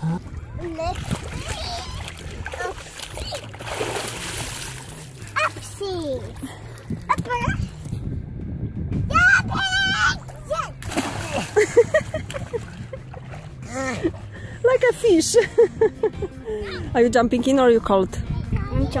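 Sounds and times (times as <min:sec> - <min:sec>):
water splashing: 0:00.0 - 0:07.4, 0:10.2 - 0:15.5
child's voice: 0:00.5 - 0:03.4, 0:05.4 - 0:06.5, 0:07.1 - 0:07.8, 0:09.1 - 0:10.8, 0:16.6 - 0:16.9, 0:18.2 - 0:19.0
girl yelling high-pitched: 0:00.8 - 0:02.7, 0:07.1 - 0:07.6, 0:09.1 - 0:10.8.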